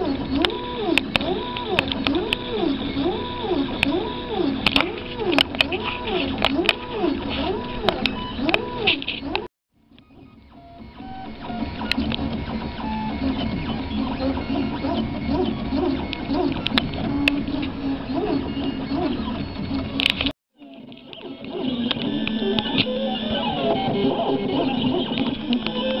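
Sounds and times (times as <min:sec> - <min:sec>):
three d printer stepper motors whining: 0:00.0 - 0:26.0.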